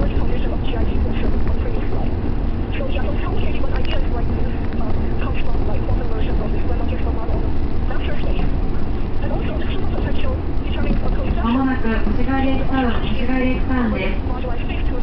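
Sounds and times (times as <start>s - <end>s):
faint voices talking: 0.0s - 15.0s
train rumbling: 0.0s - 15.0s.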